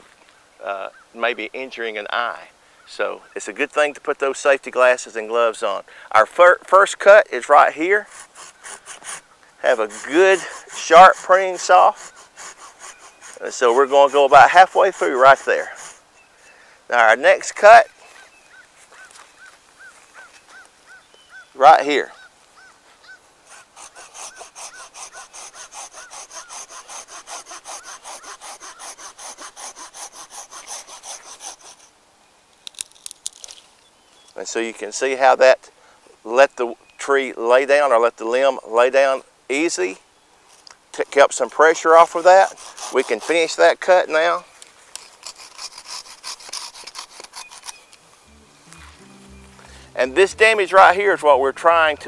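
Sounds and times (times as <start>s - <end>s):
hand saw cutting branch: 7.0s - 16.0s, 23.4s - 31.9s, 41.0s - 50.0s
wood cracking: 32.6s - 33.7s
background music: 48.1s - 52.0s.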